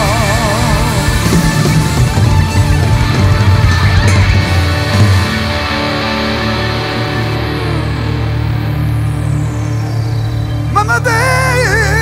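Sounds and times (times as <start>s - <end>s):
bass: 0.0s - 12.0s
electric guitars: 0.0s - 12.0s
keyboards holding sustained notes: 0.0s - 12.0s.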